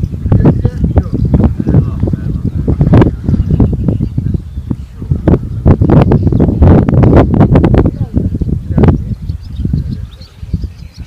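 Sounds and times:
low uneven rumble: 0.0s - 11.0s
faint bird chirps: 8.9s - 11.0s.

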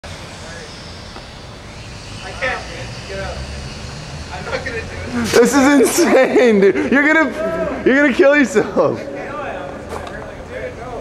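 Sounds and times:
faint voices: 2.2s - 11.0s.

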